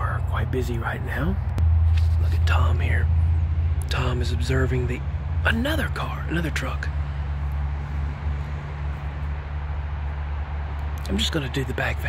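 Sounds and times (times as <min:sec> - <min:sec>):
vehicle passing: 0:00.0 - 0:12.0
tyre road noise hiss: 0:01.6 - 0:05.0.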